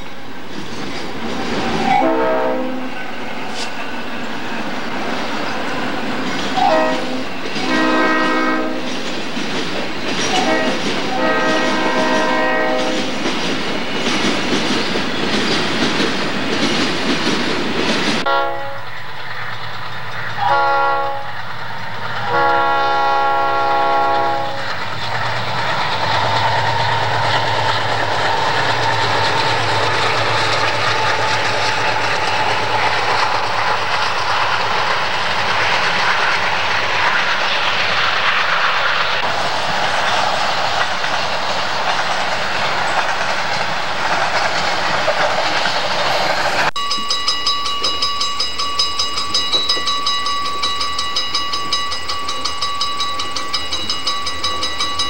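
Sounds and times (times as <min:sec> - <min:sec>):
diesel locomotive hum: 0:00.0 - 0:47.1
train air horn: 0:01.8 - 0:03.0, 0:06.6 - 0:09.0, 0:10.4 - 0:13.2, 0:18.2 - 0:18.9, 0:20.4 - 0:21.4, 0:22.2 - 0:24.8.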